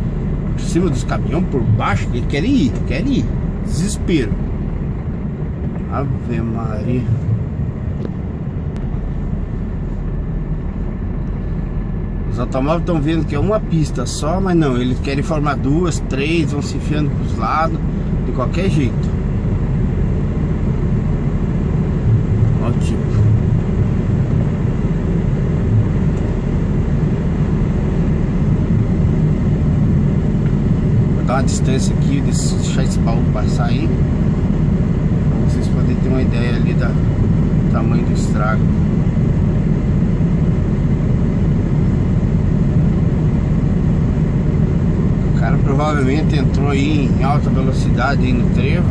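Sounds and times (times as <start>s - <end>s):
truck diesel engine running: 0.0s - 48.9s.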